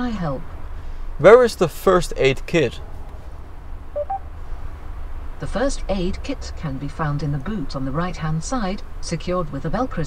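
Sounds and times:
short electronic beeps: 4.0s - 4.3s.

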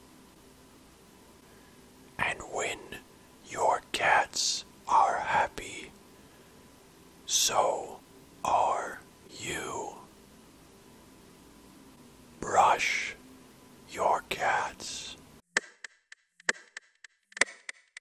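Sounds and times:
person whispering: 2.2s - 6.0s, 7.3s - 10.1s, 12.4s - 13.2s, 13.9s - 15.2s.

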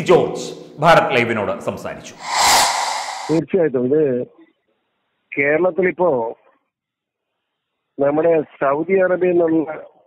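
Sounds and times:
loud rushing hiss: 2.2s - 3.4s.

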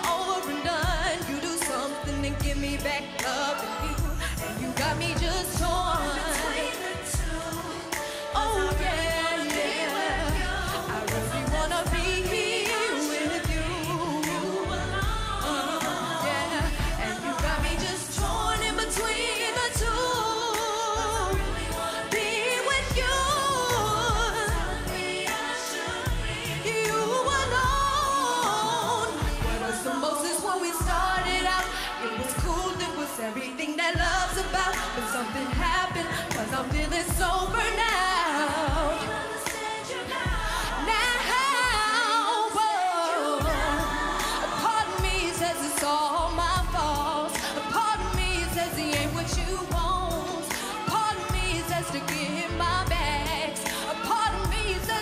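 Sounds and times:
backing music with low beat: 0.0s - 33.2s, 33.9s - 41.8s, 43.4s - 55.0s
woman singing into a microphone: 0.0s - 55.0s.

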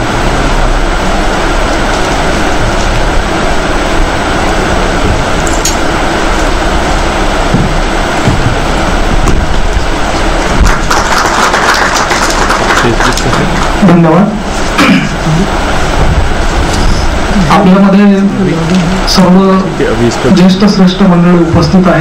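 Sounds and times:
audience applauding: 10.1s - 14.0s.

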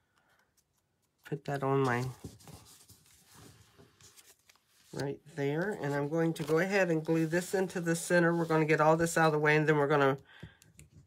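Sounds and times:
cardstock rustling and rubbing: 0.5s - 9.3s.

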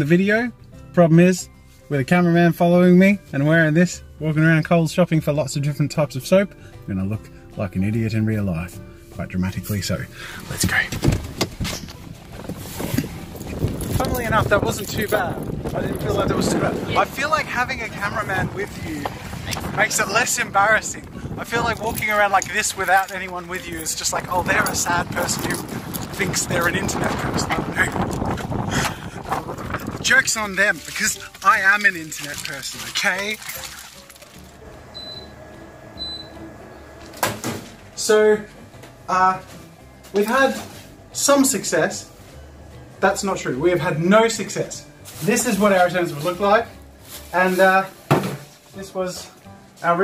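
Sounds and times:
clothing rubbing against microphone: 10.6s - 15.9s
short high electronic beeps: 34.9s - 35.3s.

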